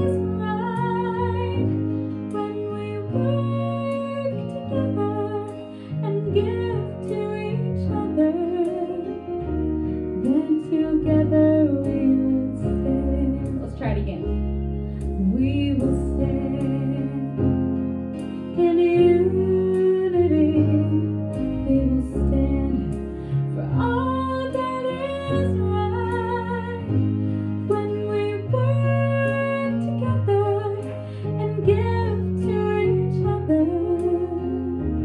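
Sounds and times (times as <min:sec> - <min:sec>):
woman singing slow song: 0:00.0 - 0:14.4, 0:15.0 - 0:35.0
instrumental accompaniment: 0:00.0 - 0:35.0.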